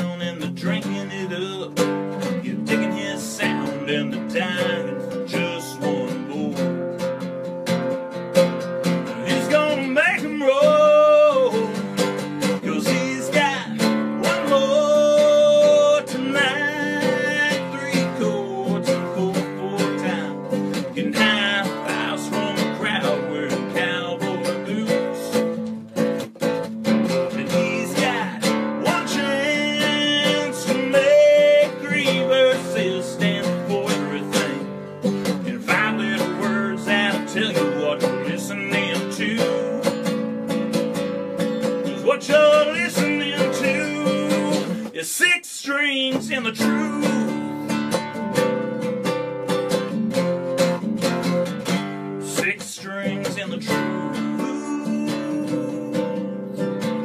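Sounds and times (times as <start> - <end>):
man singing: 0.0 - 7.2, 8.7 - 40.6, 41.4 - 57.0
acoustic guitar strumming: 0.0 - 57.0.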